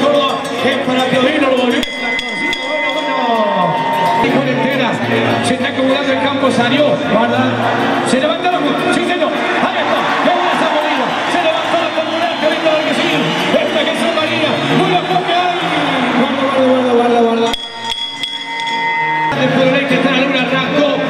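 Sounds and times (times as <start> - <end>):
man talking fast: 0.0 - 17.6, 19.3 - 21.0.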